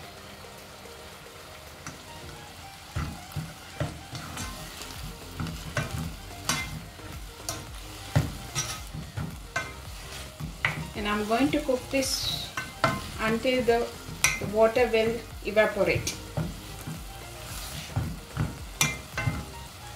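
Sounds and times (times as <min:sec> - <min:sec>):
faint sizzle: 0:00.0 - 0:19.9.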